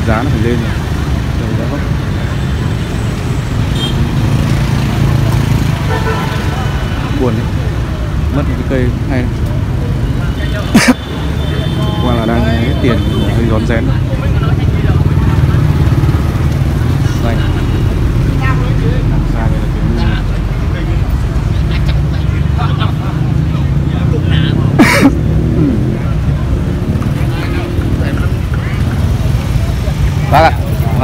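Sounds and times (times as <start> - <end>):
people talking: 0.0 - 0.8, 11.8 - 15.6, 18.4 - 26.5
low street rumble: 0.0 - 31.0.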